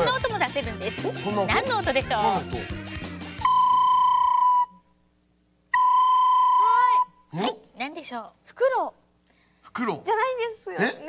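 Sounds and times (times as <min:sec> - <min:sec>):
recorder playing high notes: 0:03.4 - 0:04.8, 0:05.8 - 0:07.2.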